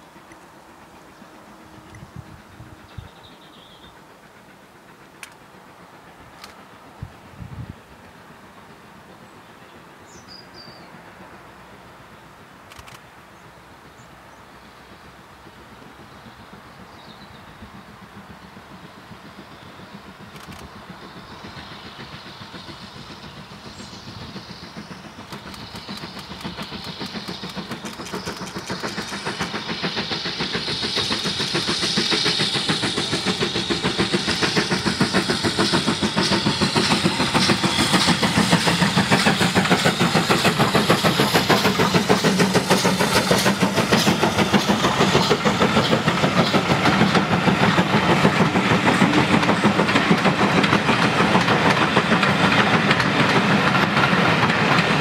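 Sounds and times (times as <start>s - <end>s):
steam locomotive exhaust chuffs: 0.0s - 55.0s
train wheels rumbling on rails: 0.0s - 55.0s.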